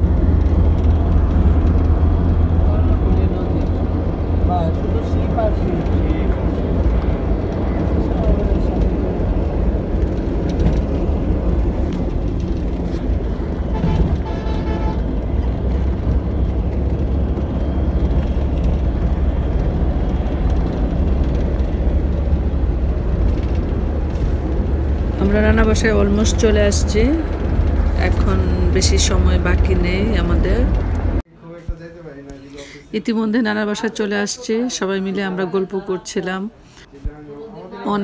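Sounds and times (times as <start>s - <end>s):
vehicle road rumble: 0.0s - 35.4s.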